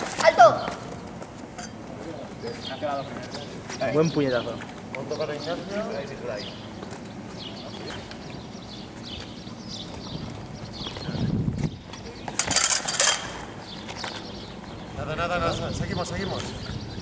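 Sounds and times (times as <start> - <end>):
footsteps on cobblestones: 0.0 - 1.6, 6.6 - 12.4, 13.4 - 15.0.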